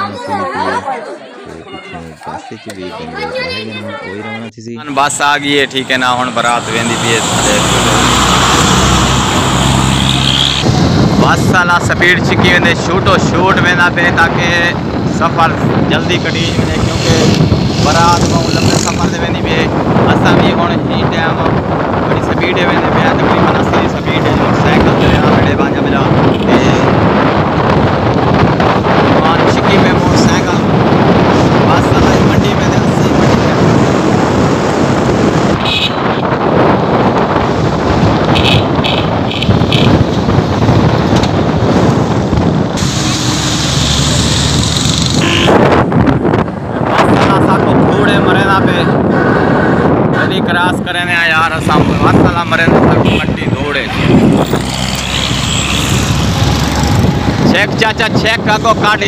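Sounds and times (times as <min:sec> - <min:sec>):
vehicle road noise: 0:00.0 - 0:59.0
wind buffeting microphone: 0:00.0 - 0:59.0
horn beeps: 0:45.2 - 0:45.6.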